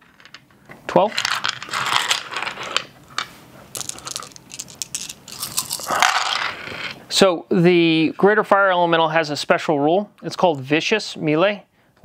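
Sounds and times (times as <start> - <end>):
dice rattling in hands: 3.7 - 6.4.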